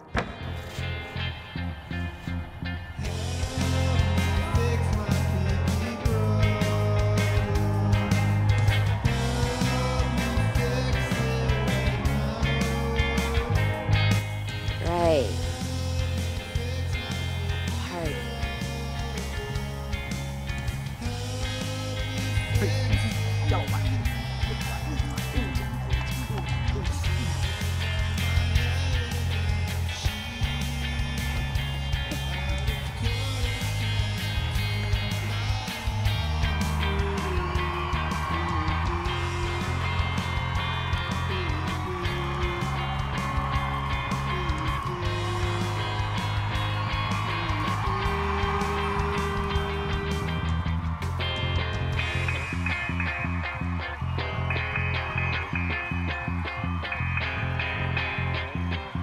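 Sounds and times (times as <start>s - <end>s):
rock band playing: 0.0s - 59.0s
person singing: 3.0s - 50.6s.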